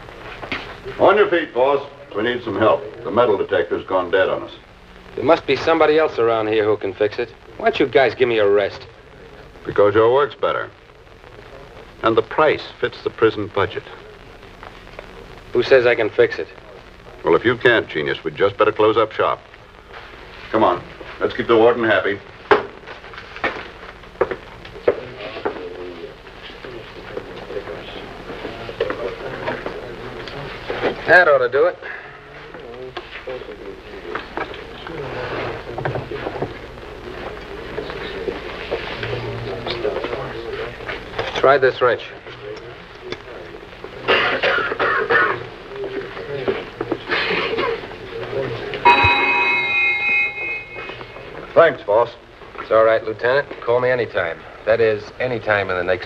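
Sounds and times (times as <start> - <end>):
low steady hum: 48.7 - 52.6
metal detector alarm buzzer: 48.8 - 51.2.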